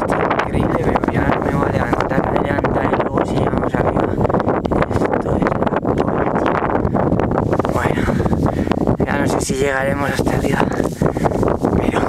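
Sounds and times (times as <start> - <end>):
strong wind on microphone: 0.0 - 12.0.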